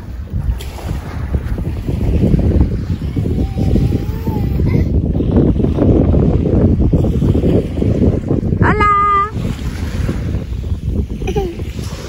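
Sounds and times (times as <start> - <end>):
surf: 0.0 - 12.0
wind buffeting microphone: 0.0 - 12.0.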